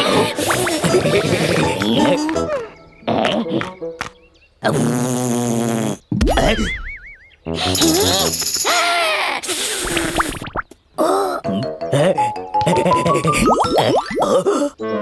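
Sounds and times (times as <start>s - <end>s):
children's background music: 0.0s - 4.3s, 11.4s - 15.0s
warbling cartoon whistle: 9.8s - 10.7s.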